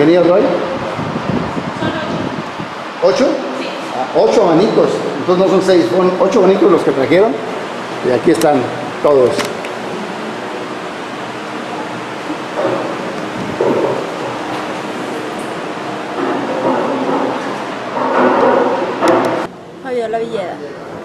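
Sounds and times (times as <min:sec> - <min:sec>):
electric fans rushing air: 0:00.0 - 0:21.0.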